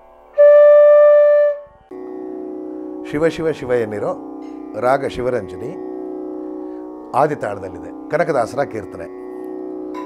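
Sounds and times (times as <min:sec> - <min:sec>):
flute note: 0:00.0 - 0:10.0
steady drone: 0:00.0 - 0:10.0.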